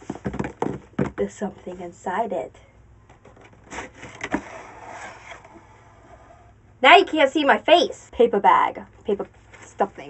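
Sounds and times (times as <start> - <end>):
knocks on cardboard box: 0.0 - 1.2
rustling of cardboard and paper: 3.2 - 6.5.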